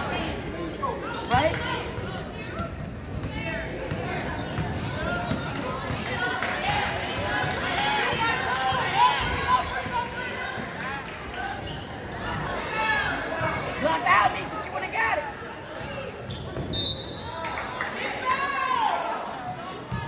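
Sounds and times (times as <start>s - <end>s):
spectators talking: 0.0s - 20.0s
sneakers squeaking: 0.7s - 5.5s, 15.7s - 17.3s.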